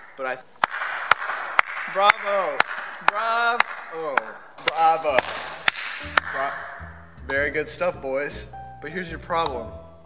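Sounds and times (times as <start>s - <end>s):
person clapping slowly: 0.0s - 7.4s
low steady hum: 5.1s - 10.0s.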